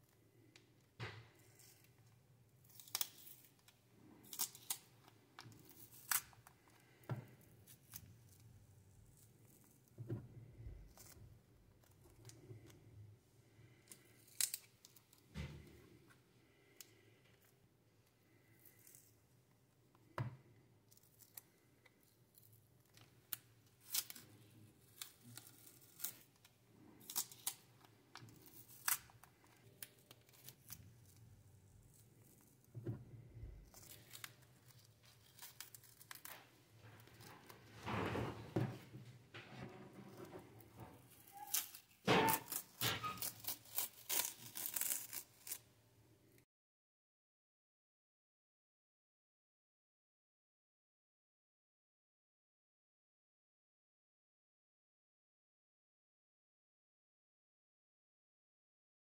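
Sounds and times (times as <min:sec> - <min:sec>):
masking tape peeling off plastic: 0:23.3 - 0:31.2, 0:33.7 - 0:37.6, 0:41.1 - 0:45.6.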